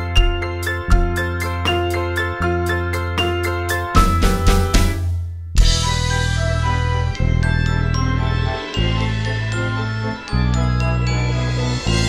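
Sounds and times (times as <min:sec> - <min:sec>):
instrumental waltz: 0:05.7 - 0:12.0.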